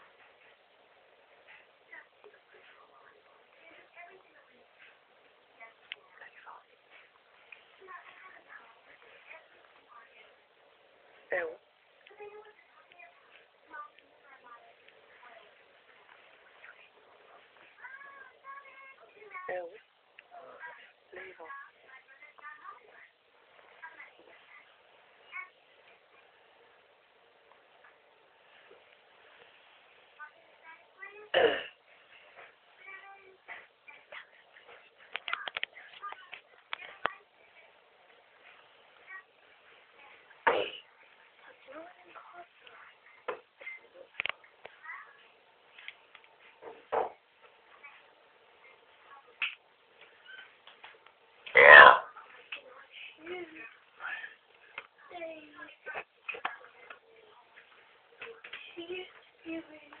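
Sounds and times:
background voice: 51.5s - 54.4s.

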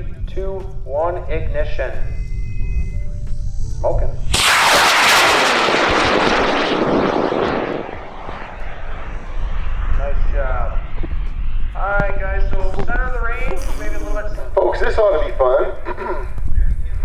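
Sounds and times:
rocket motor exhaust roar: 4.3s - 14.3s.

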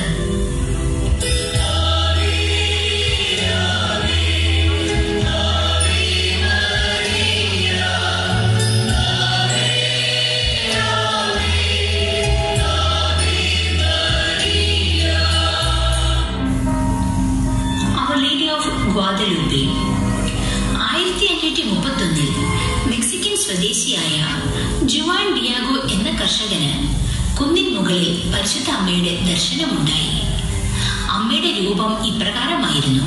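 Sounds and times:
sustained low bass notes: 0.0s - 18.1s
choir singing: 1.3s - 16.5s.

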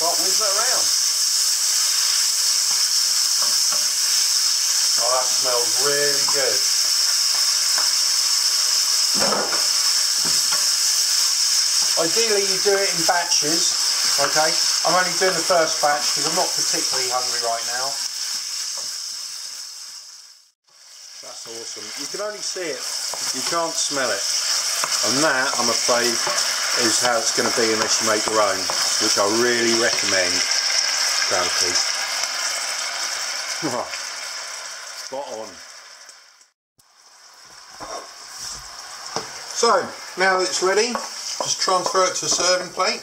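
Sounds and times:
beef sizzling in a wok: 0.0s - 43.0s.

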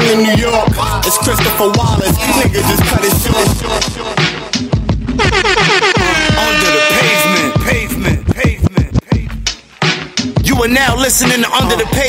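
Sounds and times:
hip hop music with rapping: 0.0s - 12.0s.

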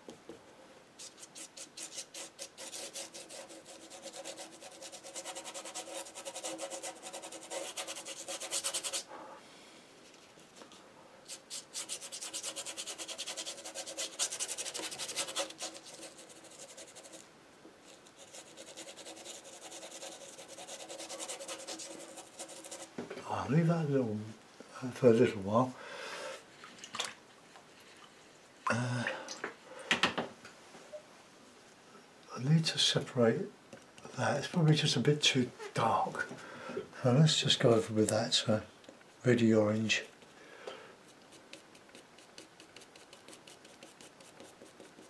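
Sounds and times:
paintbrush scrubbing on paper: 1.0s - 9.1s, 11.3s - 17.2s, 17.8s - 22.9s, 41.1s - 45.0s.

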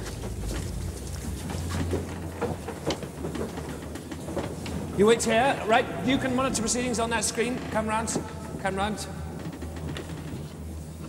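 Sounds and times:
footsteps: 0.0s - 11.0s
steady low hum: 0.0s - 11.0s.

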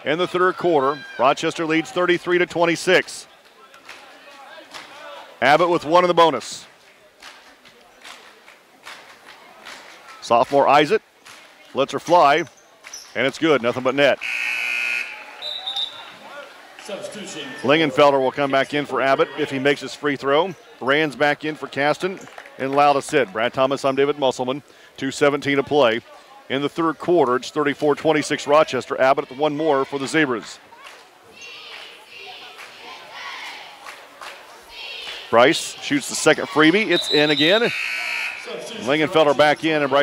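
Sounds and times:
crowd shouting: 0.0s - 2.0s, 14.6s - 18.1s, 31.3s - 33.8s, 34.5s - 40.0s
gymnasium crowd murmur: 0.0s - 40.0s
scoreboard horn: 14.2s - 15.6s, 37.1s - 38.6s.

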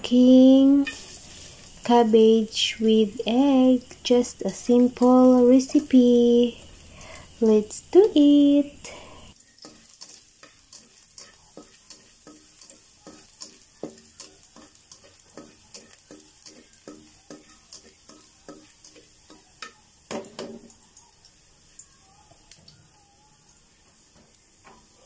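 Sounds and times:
faint sizzle: 0.0s - 25.0s
spatula scraping a metal pan: 0.7s - 1.9s, 9.6s - 19.7s.

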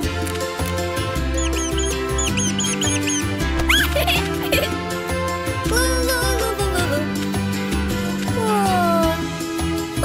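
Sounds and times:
cartoon background music: 0.0s - 10.0s
short high squeaks: 1.4s - 3.8s.

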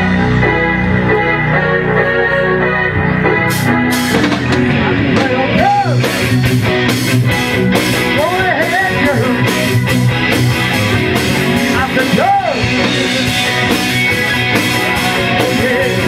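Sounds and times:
live rock band playing: 0.0s - 16.0s.

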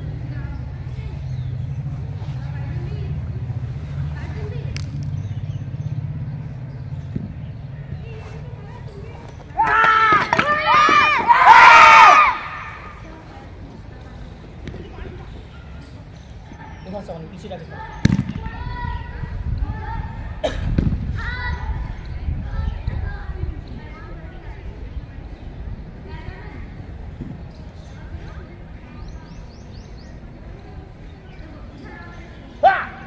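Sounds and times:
steady low rumble: 0.0s - 9.2s, 18.0s - 31.6s
faint indistinct voices: 0.0s - 33.0s
faint movement sounds: 0.0s - 33.0s
children shouting together: 9.6s - 13.1s.

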